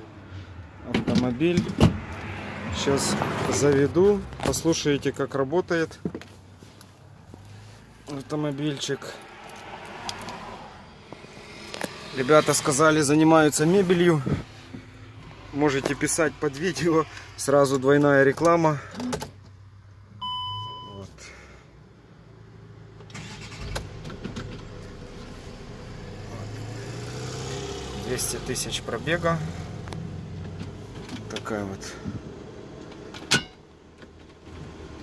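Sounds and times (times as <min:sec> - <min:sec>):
dashboard warning beep: 0:20.2 - 0:21.0.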